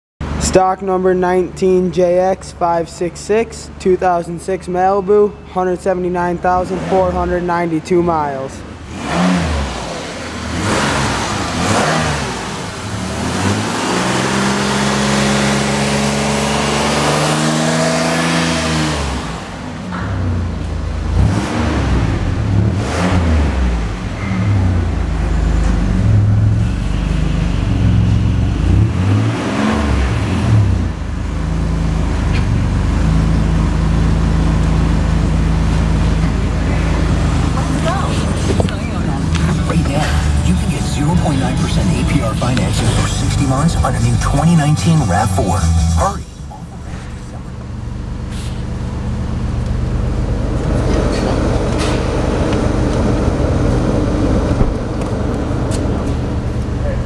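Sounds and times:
car engine idling and revving: 5.3s - 57.0s.

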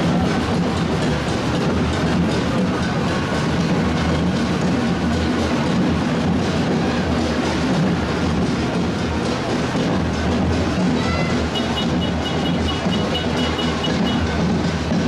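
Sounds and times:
tractor diesel engine rumbling: 0.0s - 15.0s.

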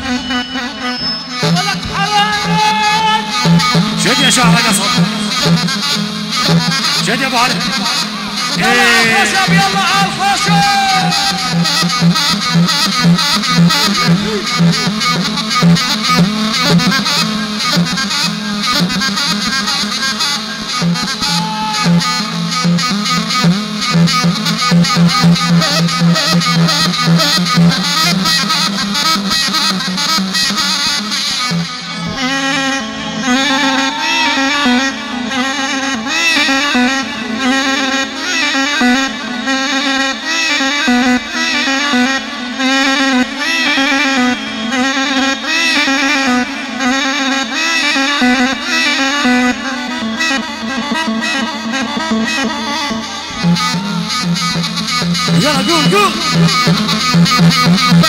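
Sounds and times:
fast pulsing accompaniment: 0.0s - 58.0s
reed pipe melody: 0.0s - 58.0s.

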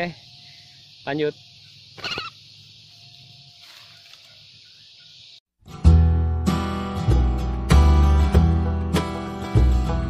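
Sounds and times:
high-pitched insect buzz: 0.0s - 5.4s.

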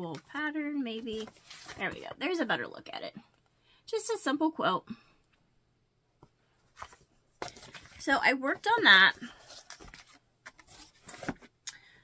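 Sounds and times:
fabric and paper rustling: 0.0s - 2.5s, 6.5s - 11.5s.

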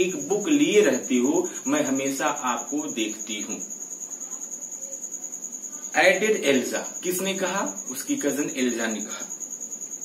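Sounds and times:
faint room noise: 0.0s - 10.0s
insect trilling: 0.0s - 10.0s.

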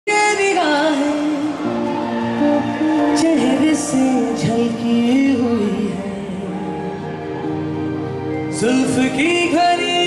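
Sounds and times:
man singing love song: 0.1s - 7.1s, 8.4s - 10.0s
electric guitar: 0.1s - 10.0s
keyboard: 0.1s - 10.0s.

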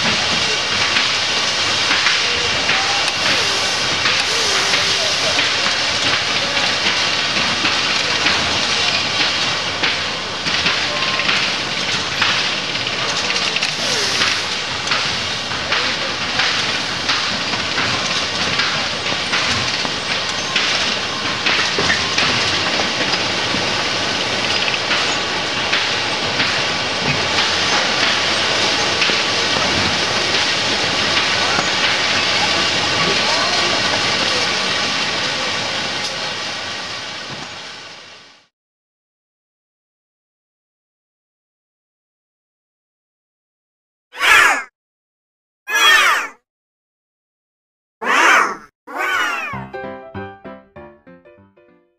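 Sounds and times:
factory machinery noise: 0.0s - 38.2s
cat meowing: 13.7s - 14.5s, 44.2s - 44.7s, 45.7s - 46.4s, 48.0s - 49.7s.

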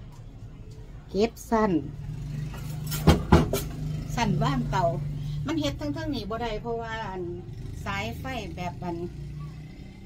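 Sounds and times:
sharp knocks: 2.9s - 3.7s.

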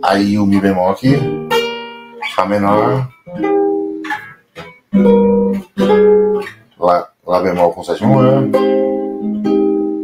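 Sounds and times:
classical guitar chord: 0.5s - 6.5s, 7.6s - 10.0s.

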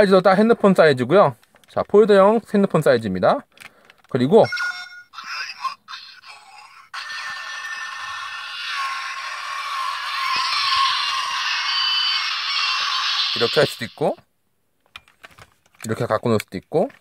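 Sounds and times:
plastic clicks: 3.5s - 4.2s, 14.8s - 17.0s
toy phone electronic sound effect: 4.4s - 14.1s.

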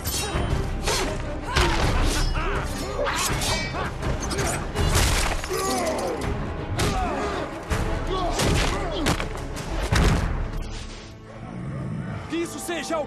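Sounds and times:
fighters grunting and crying out: 0.0s - 9.1s
orchestral score: 0.0s - 13.0s.

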